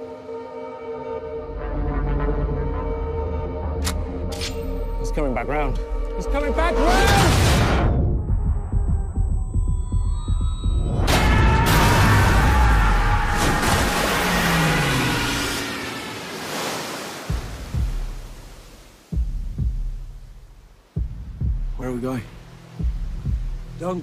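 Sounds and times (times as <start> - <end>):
low double thump in music: 17.3 - 18.4, 19.1 - 20.4, 22.8 - 23.7.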